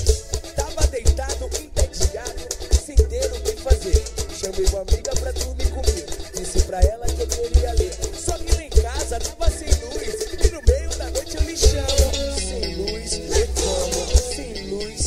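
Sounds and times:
dance music with heavy bass: 0.0 - 12.5.

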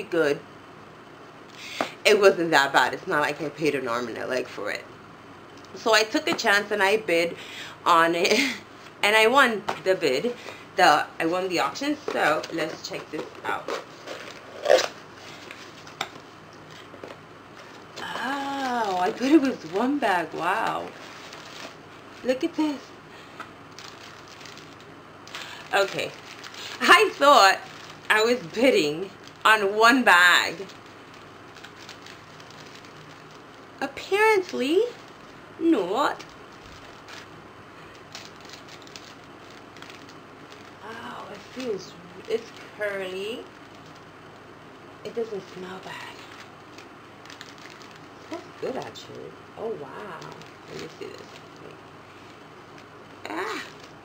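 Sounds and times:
plastic bags crinkling: 17.6 - 22.6, 23.2 - 44.5, 46.1 - 54.0.

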